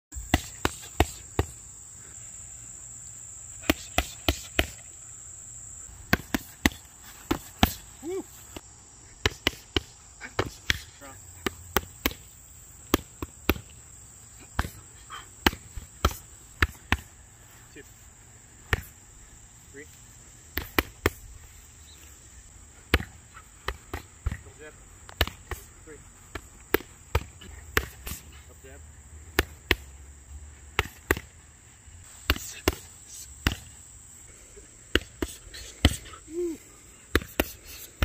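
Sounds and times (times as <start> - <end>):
high insect drone: 0.1 - 38.0
boxing gloves hitting mitts: 0.2 - 1.6, 3.6 - 4.9, 5.9 - 8.6, 9.2 - 13.8, 14.4 - 17.2, 18.6 - 19.0, 20.5 - 21.3, 22.8 - 28.4, 29.3 - 30.0, 30.7 - 31.4, 32.2 - 33.8, 34.8 - 38.0.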